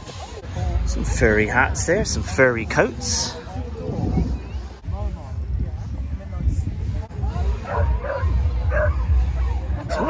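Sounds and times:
people's voices nearby: 0.0s - 10.0s
wind buffeting microphone: 0.0s - 10.0s.

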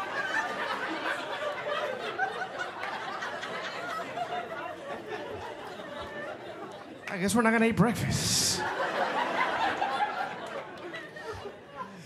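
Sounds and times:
audience chatter and laughter: 0.0s - 12.0s.

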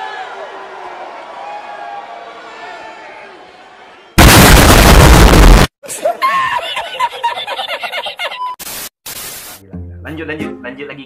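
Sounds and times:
man laughing in high cackles: 5.9s - 8.6s
short bursts of hiss: 8.6s - 9.6s.

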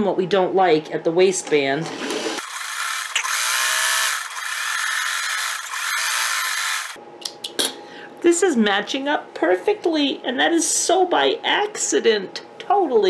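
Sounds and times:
sewing machine running: 1.9s - 7.0s.

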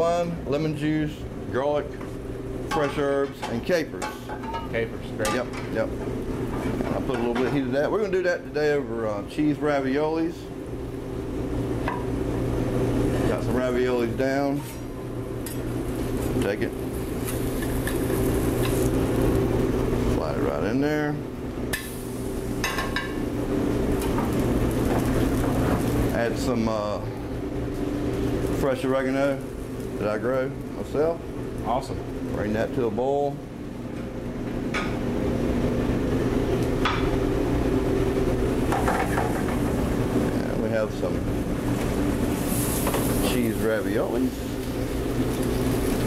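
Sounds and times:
gas range and exhaust hood roar: 0.0s - 46.0s
steady low hum: 0.0s - 46.0s
sizzling hiss from hot pan: 21.8s - 23.2s, 42.3s - 46.0s.

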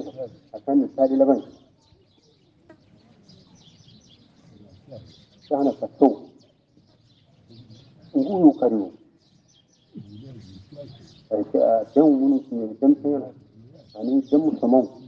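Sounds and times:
person speaking: 0.0s - 1.5s, 8.1s - 8.9s, 10.0s - 15.0s
faint bird chirping: 0.0s - 15.0s.

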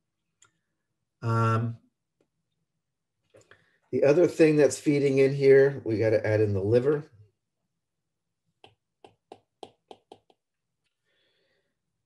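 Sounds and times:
stylus tapping on tablet screen: 8.6s - 10.5s.

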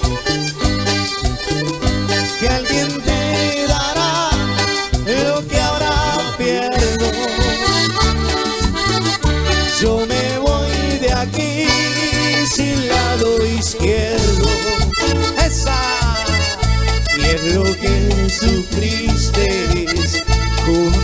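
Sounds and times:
accordion melody: 0.0s - 21.0s
bass and percussion beat: 0.0s - 21.0s.

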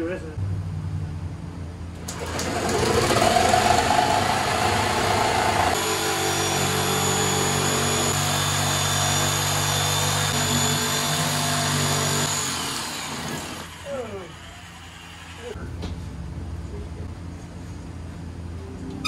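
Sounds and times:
power tool cutting drywall: 2.1s - 13.8s.

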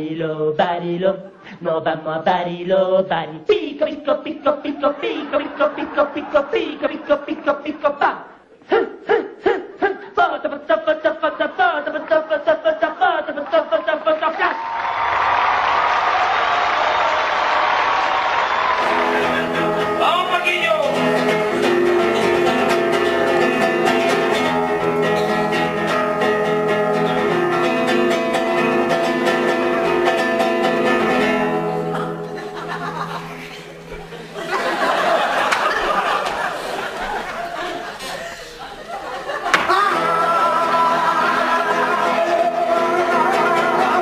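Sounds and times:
acoustic guitar strumming: 18.8s - 34.5s, 39.5s - 44.0s.

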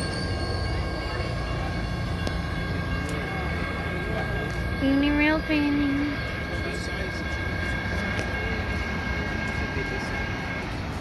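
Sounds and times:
train rumbling: 0.0s - 11.0s.

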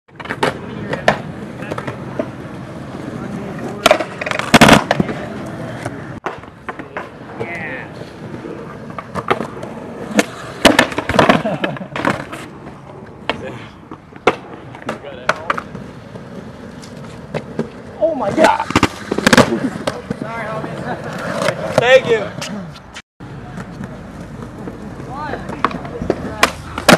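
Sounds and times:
skateboard clacks: 0.1s - 26.9s
skateboard wheels rolling on concrete: 0.1s - 26.9s.

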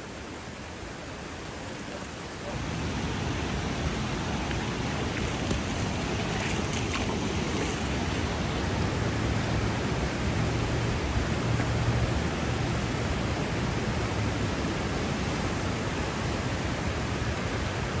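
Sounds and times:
floodwater rushing along street: 0.0s - 18.0s.

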